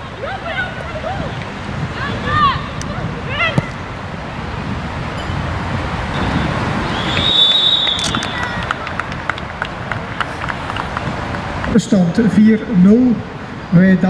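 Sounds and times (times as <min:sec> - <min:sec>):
wind noise on microphone: 0:00.0 - 0:11.8
referee's whistle: 0:06.1 - 0:08.6.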